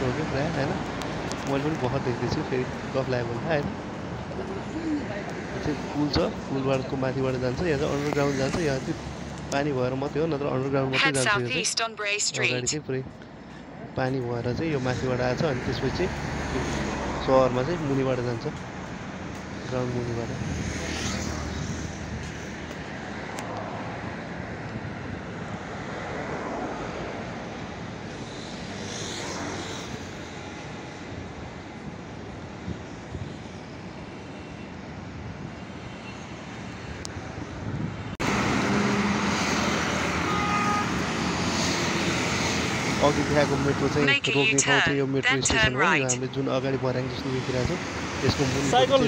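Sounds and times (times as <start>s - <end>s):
city traffic noise: 0.0s - 49.0s
loud roadside traffic: 0.0s - 49.0s.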